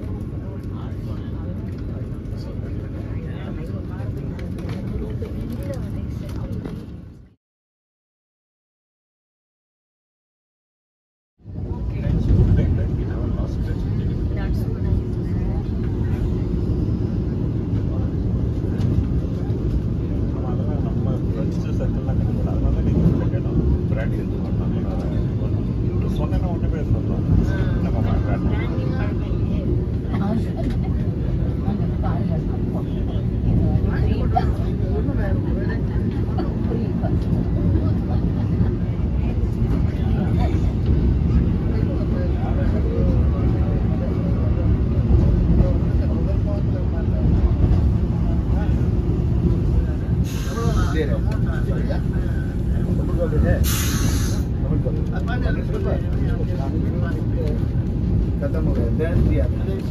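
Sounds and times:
faint passenger voices: 0.0s - 7.4s, 11.4s - 59.9s
train rumbling inside coach: 0.0s - 7.4s, 11.4s - 59.9s.

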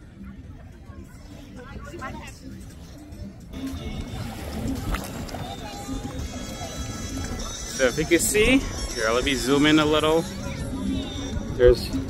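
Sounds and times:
background music: 0.0s - 12.0s
people's voices: 0.0s - 12.0s
wind rumbling on microphone: 0.0s - 12.0s.

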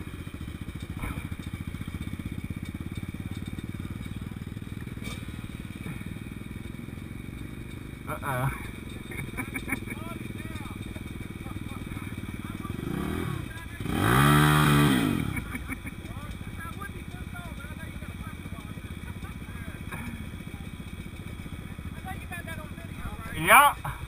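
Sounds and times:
dirt bike engine idling: 0.0s - 24.0s
dirt bike throttle rev: 0.0s - 24.0s.

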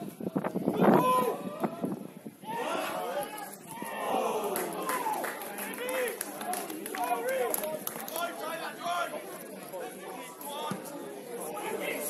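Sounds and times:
footballers shouting: 2.4s - 6.2s.

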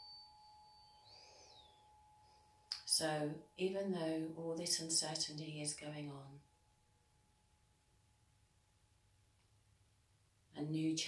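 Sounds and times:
faint high chirp: 0.0s - 3.0s
tuning fork ringing: 0.0s - 8.6s.

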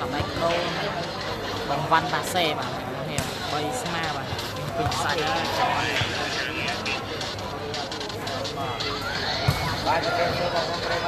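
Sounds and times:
spectators talking: 0.0s - 11.0s.

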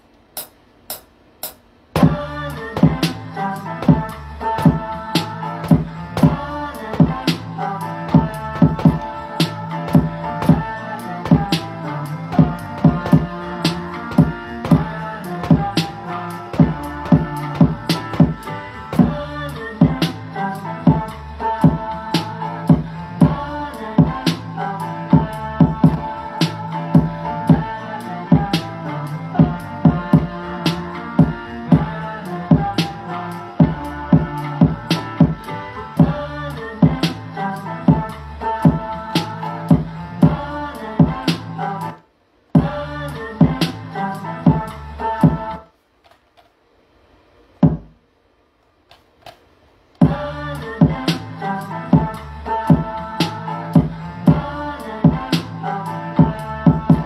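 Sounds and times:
hip-hop beat with looped song sample: 0.0s - 42.0s, 42.6s - 45.7s, 47.6s - 48.0s, 50.0s - 57.0s.

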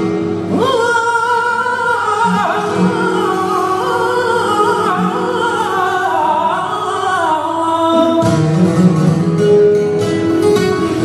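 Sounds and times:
flamenco guitar: 0.0s - 11.0s
man singing flamenco: 0.0s - 11.0s.

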